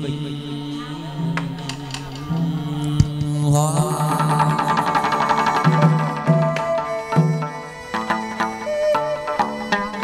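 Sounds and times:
low sung chant: 0:00.0 - 0:06.4.

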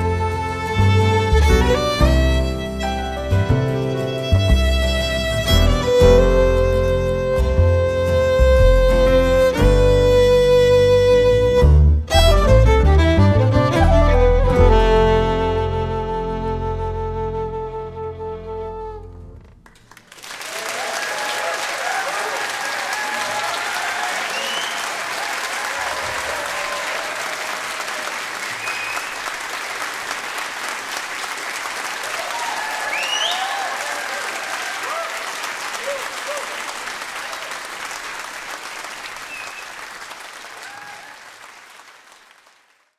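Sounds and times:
audience applauding and cheering: 0:19.4 - 0:42.9
shouts and whoops: 0:20.5 - 0:28.0, 0:32.1 - 0:36.7, 0:40.6 - 0:41.3.

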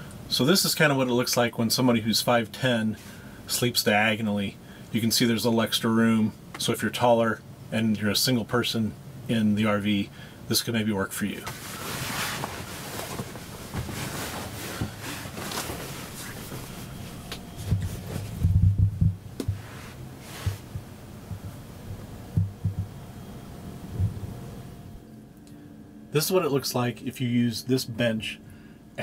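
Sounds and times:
rustling on cushions: 0:11.4 - 0:22.9
heavy thumps: 0:11.5 - 0:23.1, 0:23.9 - 0:24.4.

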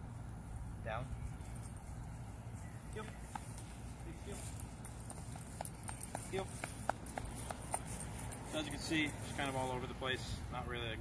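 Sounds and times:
leash and collar metallic clinks: 0:00.4 - 0:10.3.

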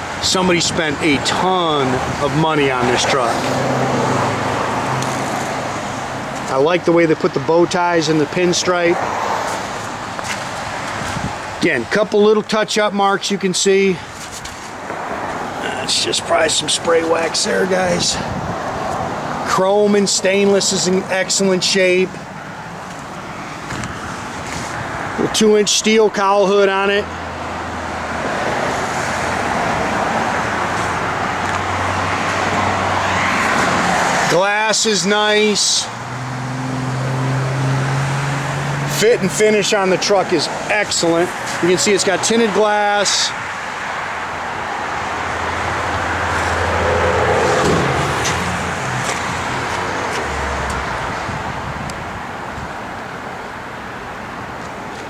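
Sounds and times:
motor vehicle rushing noise: 0:00.0 - 0:06.6, 0:08.2 - 0:11.6, 0:14.1 - 0:19.6, 0:22.3 - 0:25.3, 0:27.1 - 0:53.2.

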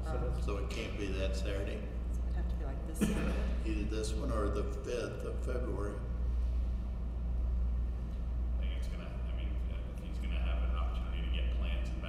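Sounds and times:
low hum of room noise: 0:00.0 - 0:12.0.

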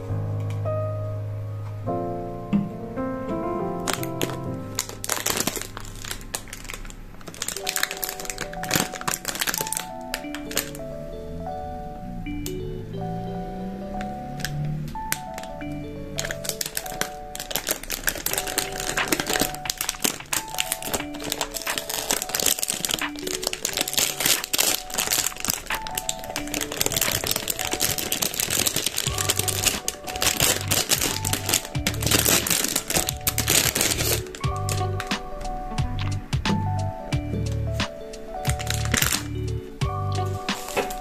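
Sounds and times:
soft background music: 0:00.0 - 0:41.0
plastic wrap crinkling: 0:03.8 - 0:10.8, 0:14.4 - 0:35.2, 0:38.4 - 0:39.3, 0:40.1 - 0:41.0
bass line: 0:30.4 - 0:32.5, 0:35.8 - 0:37.9, 0:38.6 - 0:40.5.

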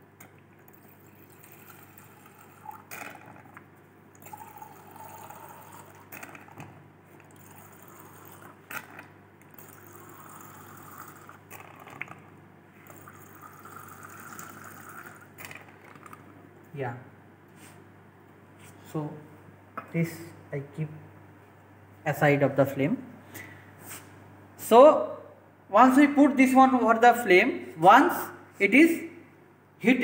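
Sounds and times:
water squirting into glass beaker: 0:00.6 - 0:16.2.

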